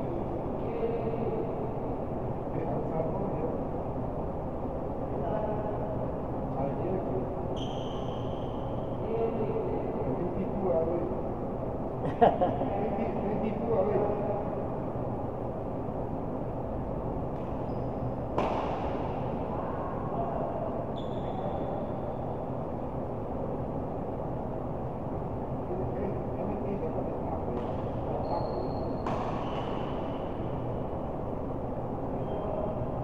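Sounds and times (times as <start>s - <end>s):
hall noise hum: 0.0s - 33.0s.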